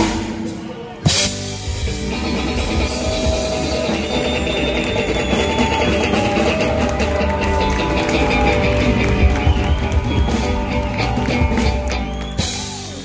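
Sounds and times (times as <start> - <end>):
live rock band playing: 0.0 - 13.0
electric guitars holding notes: 1.0 - 13.0.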